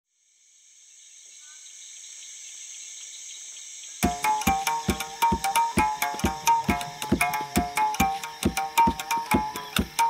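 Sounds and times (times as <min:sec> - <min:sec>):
insects chirring: 0:00.1 - 0:10.0.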